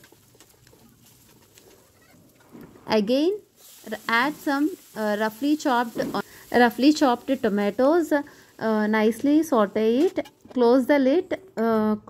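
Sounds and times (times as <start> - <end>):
person speaking: 2.9 - 12.0
food sizzling in oil: 3.4 - 10.1.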